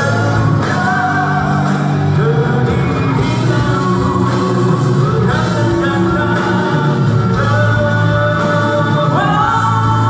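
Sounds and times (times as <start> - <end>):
live rock band with singing: 0.0 - 10.0.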